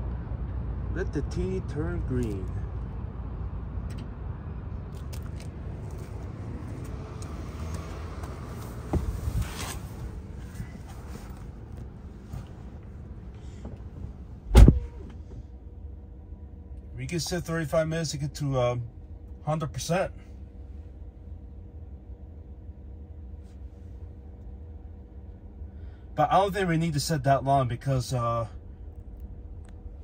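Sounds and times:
loud thump: 14.5s - 15.2s.

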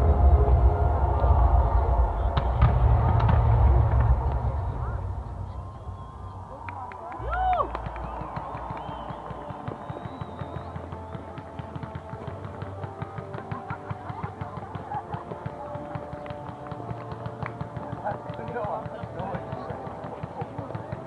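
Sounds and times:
music playing: 0.0s - 21.0s
fireworks popping and crackling: 2.2s - 21.0s.

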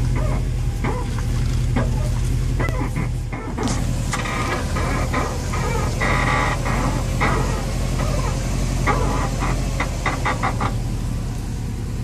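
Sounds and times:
suspension squeaking: 0.0s - 11.3s
engine running low hum: 0.0s - 12.0s.

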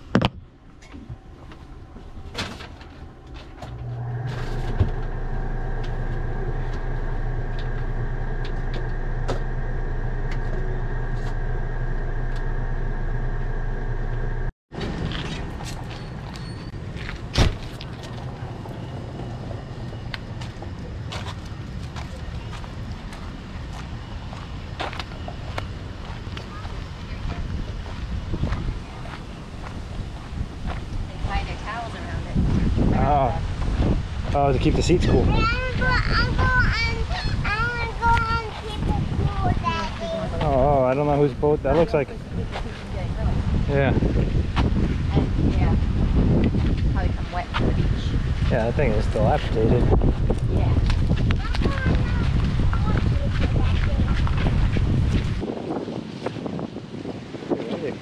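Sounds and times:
air conditioner humming: 0.0s - 15.6s
footsteps outdoors: 0.0s - 57.6s
light wind: 0.0s - 58.0s.

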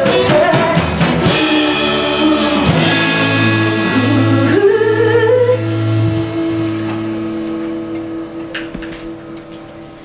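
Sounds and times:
woman singing: 0.0s - 7.9s
acoustic guitar: 0.0s - 10.0s.

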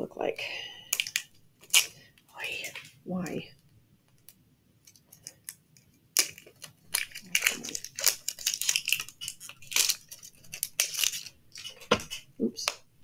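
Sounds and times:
plastic packaging crackling: 0.9s - 2.0s, 4.2s - 12.9s.

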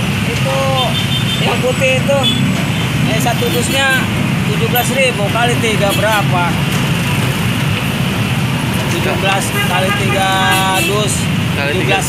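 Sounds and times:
dense road traffic: 0.0s - 12.0s
vehicle horn: 9.4s - 11.2s.

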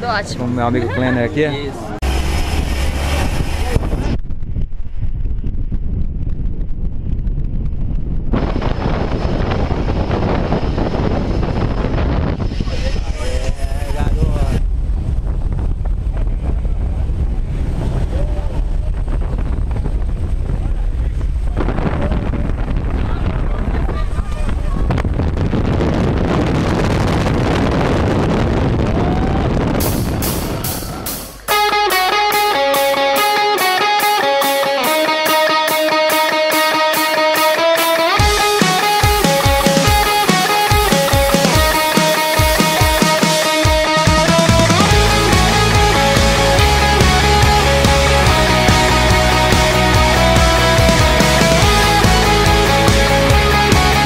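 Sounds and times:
airplane engine: 1.8s - 4.1s
wind on microphone: 2.0s - 31.5s
electric guitar rock music: 30.3s - 54.0s.

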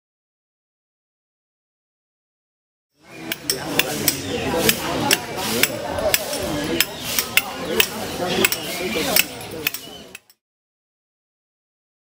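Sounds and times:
background voices: 3.0s - 10.2s
hand tools striking stone: 3.2s - 10.4s.

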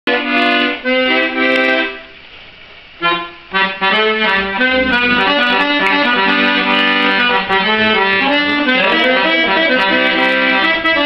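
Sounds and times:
piano accordion chords: 0.1s - 2.3s, 3.0s - 11.0s.

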